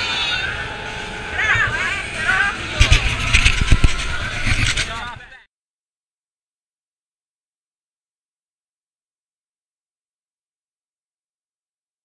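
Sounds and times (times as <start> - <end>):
people's voices: 1.2 - 5.4.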